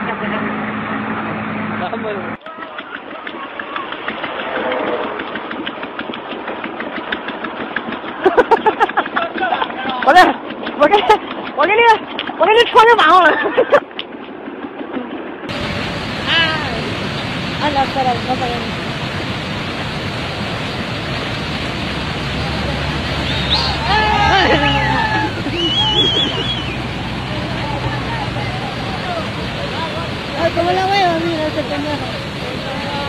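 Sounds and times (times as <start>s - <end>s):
rushing floodwater: 0.0s - 13.8s, 15.5s - 33.0s
faint voices: 22.3s - 33.0s.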